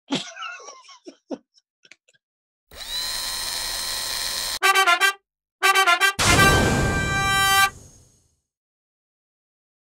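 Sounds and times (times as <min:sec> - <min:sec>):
short punchy fanfare notes: 0:04.6 - 0:08.0.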